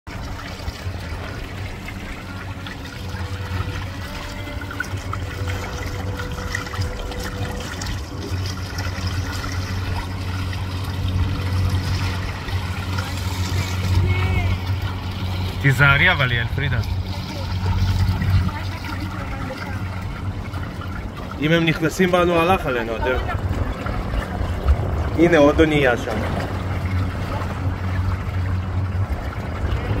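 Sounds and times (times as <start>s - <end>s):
boat engine drone: 0.1s - 30.0s
steady low rumble: 0.1s - 30.0s
water splashing against hull: 0.1s - 30.0s.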